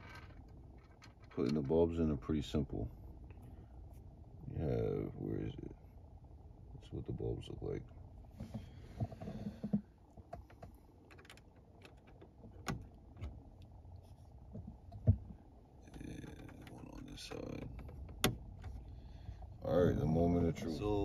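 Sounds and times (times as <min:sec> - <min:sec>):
rustling and scraping: 0:08.3 - 0:19.0.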